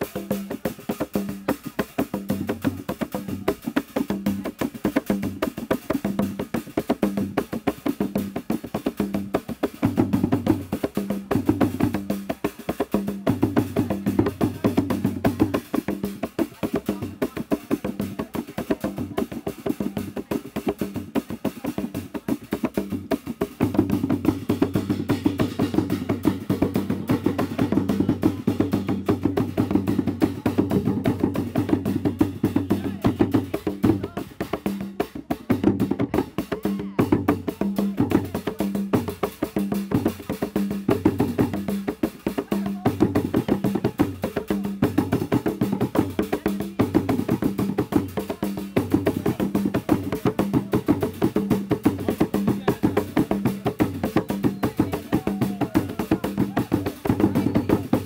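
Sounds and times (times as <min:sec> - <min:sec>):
hand drums playing fast rhythm: 0:00.0 - 0:58.0.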